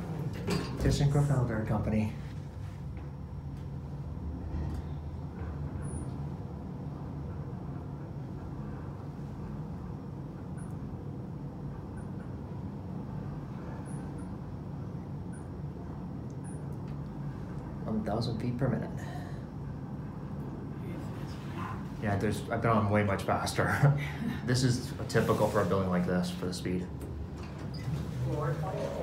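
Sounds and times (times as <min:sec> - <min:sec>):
elevator rumble and hum: 0:00.0 - 0:29.0.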